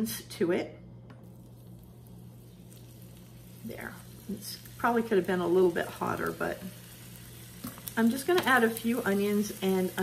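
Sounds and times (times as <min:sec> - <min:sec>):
steady low hum: 0:00.0 - 0:10.0
onion ring sizzling in oil: 0:01.2 - 0:10.0.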